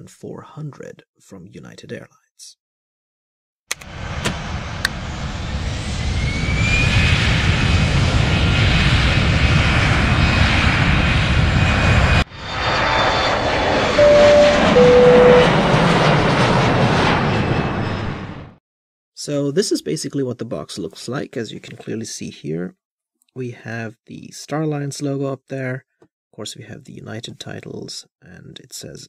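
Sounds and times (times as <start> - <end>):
aircraft engine noise: 3.7 - 18.5
rising whine: 3.8 - 18.5
two steady tones: 14.0 - 15.6.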